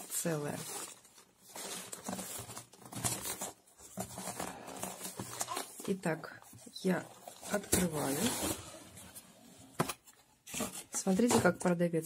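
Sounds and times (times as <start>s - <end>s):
cardboard box rustling and scraping: 0.5s - 6.2s, 6.8s - 11.5s.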